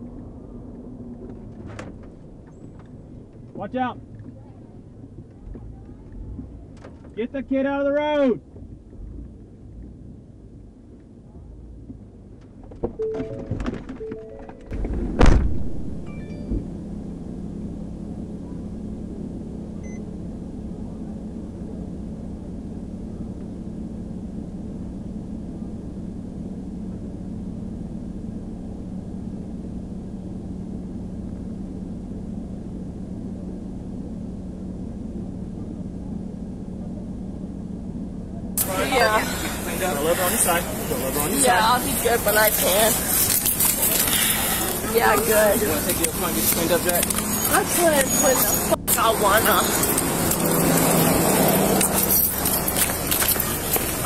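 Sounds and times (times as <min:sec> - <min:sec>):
steady low hum: 0:14.6 - 0:54.0
loud voices: 0:38.6 - 0:54.0.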